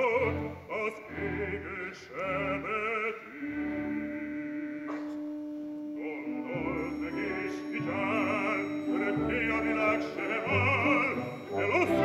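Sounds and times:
opera singing: 0.0s - 5.0s, 6.0s - 12.0s.

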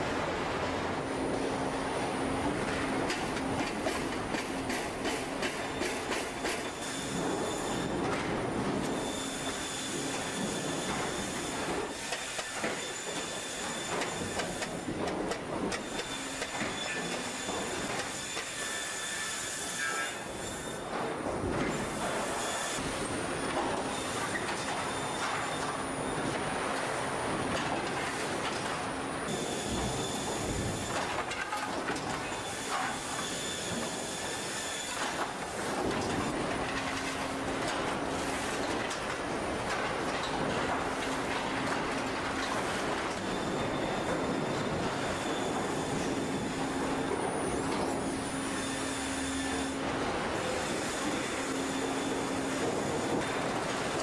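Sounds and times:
machinery clatter and hiss: 0.0s - 54.0s
high steady machine whine: 0.9s - 54.0s.

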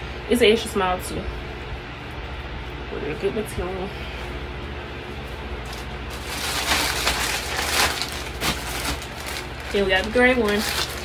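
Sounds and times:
clothing rustling: 5.1s - 11.0s
plastic bag crinkling: 5.6s - 11.0s.

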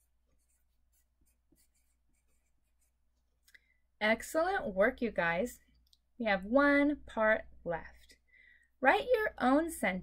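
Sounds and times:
pencil scratching on paper: 0.0s - 3.3s.

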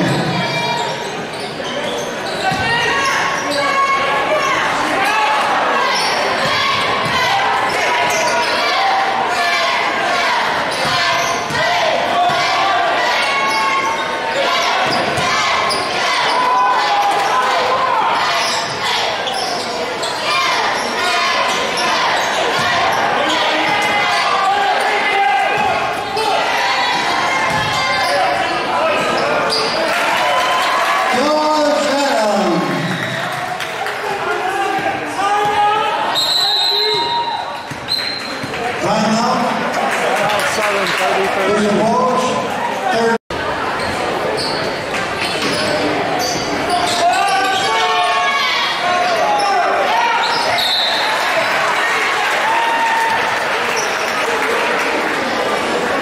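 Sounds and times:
voices of players and spectators: 0.0s - 56.0s.

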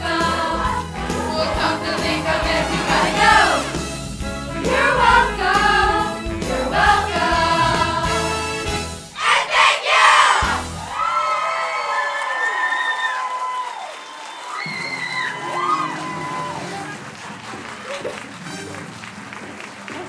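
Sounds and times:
cast singing: 0.0s - 8.6s
music: 0.0s - 11.0s, 14.7s - 20.0s
audience cheering and applauding: 0.1s - 4.0s, 10.2s - 20.0s
high-pitched whoops and shouts: 10.8s - 16.7s.

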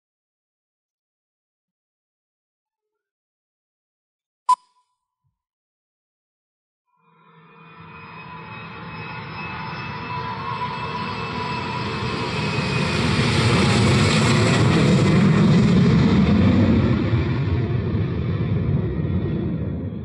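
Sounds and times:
jet airliner flying overhead: 7.0s - 20.0s.

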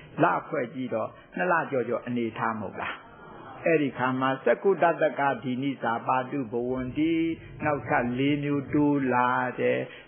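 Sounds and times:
person chanting a sermon: 0.0s - 3.0s, 3.6s - 10.0s.

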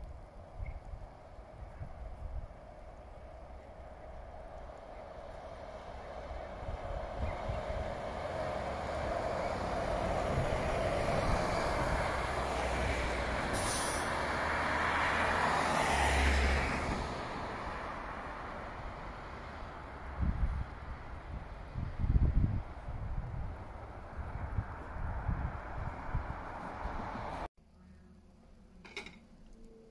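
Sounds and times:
bus passing by: 2.6s - 27.5s
brief hiss: 13.5s - 14.2s.

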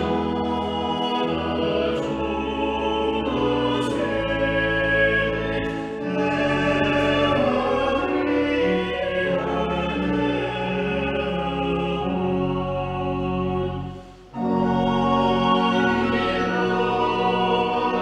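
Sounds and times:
low organ notes: 0.0s - 18.0s
small choir singing a hymn: 0.0s - 18.0s.

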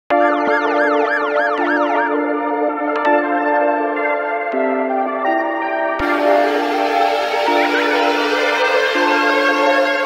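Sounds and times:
siren-like pitch sweep: 0.1s - 2.4s
held synth chord: 0.1s - 10.0s.

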